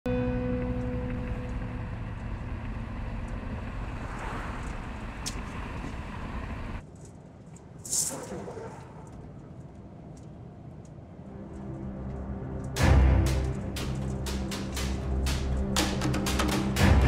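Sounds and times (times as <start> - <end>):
car engine and tyre noise: 0.1 - 17.0.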